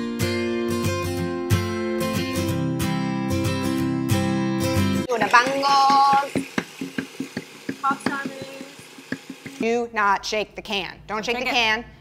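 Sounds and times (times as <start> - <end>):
person speaking: 5.1 - 6.5, 7.7 - 8.9.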